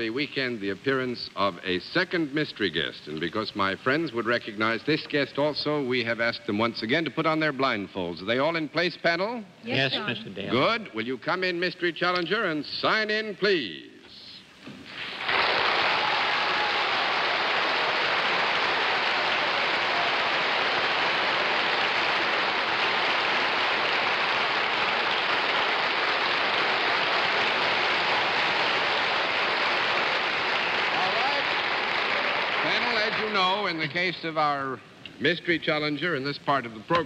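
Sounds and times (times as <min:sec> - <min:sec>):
audience applauding: 0:15.0 - 0:34.0.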